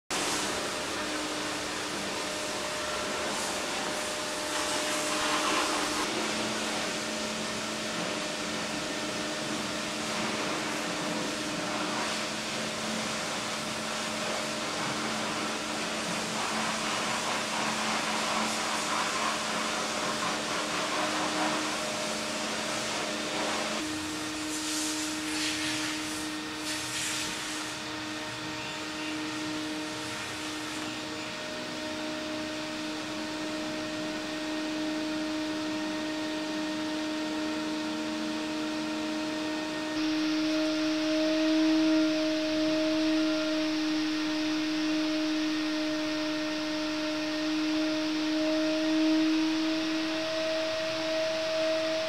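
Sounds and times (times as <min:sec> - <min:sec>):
appliance whooshing with low hum: 0:00.1 - 0:52.0.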